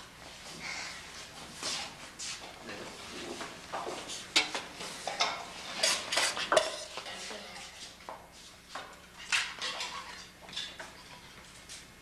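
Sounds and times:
tableware clinking: 5.1 - 7.3.

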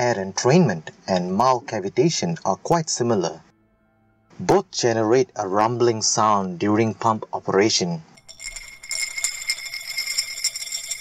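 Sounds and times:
jingling bell-like shimmer: 8.2 - 11.0
shaker-like rattle: 8.2 - 11.0.

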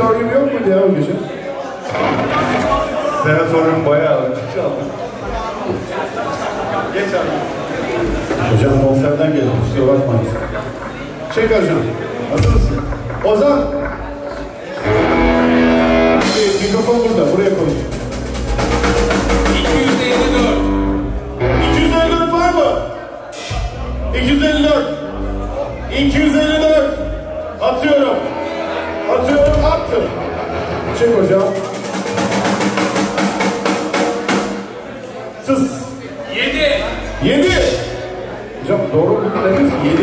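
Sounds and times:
drum roll on drum kit: 16.1 - 20.8
sustained low instrument notes: 23.5 - 27.6.

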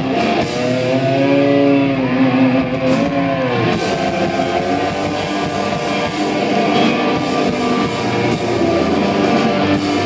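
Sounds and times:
distorted electric guitar note bending: 0.0 - 10.0
rock band playing: 0.0 - 10.0.

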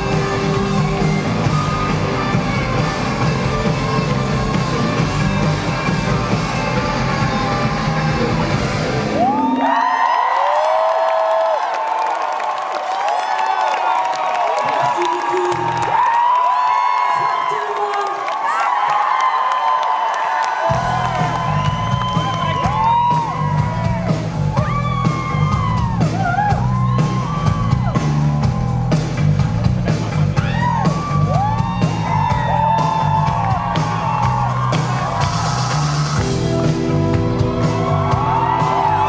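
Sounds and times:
rock band playing live: 0.0 - 9.6, 20.6 - 39.0
crowd cheering and whooping: 0.0 - 39.0.

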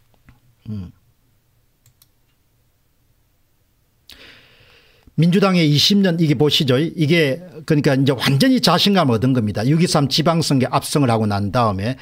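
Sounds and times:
computer mouse clicks: 1.8 - 2.4
man drawing breath: 4.1 - 5.1.

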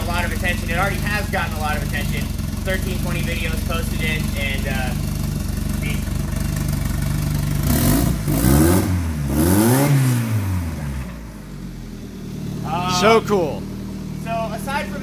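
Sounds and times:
car engine idling and revving: 0.0 - 15.0.

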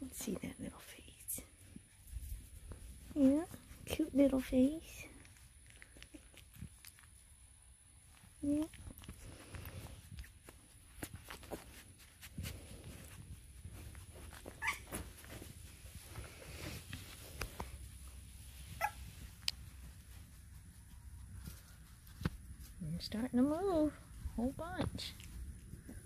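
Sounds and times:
rustling: 0.0 - 26.0
puppy whimpering: 14.5 - 15.0, 18.8 - 19.0.

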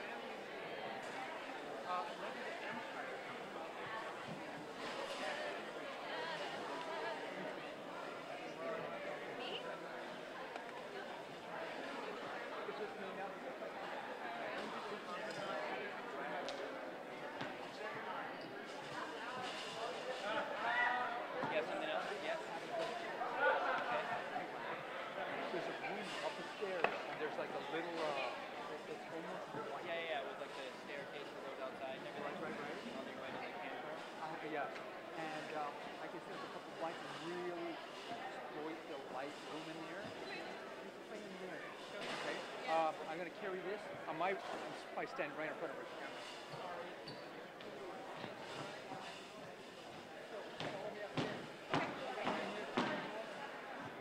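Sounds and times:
people chattering: 0.0 - 54.0.

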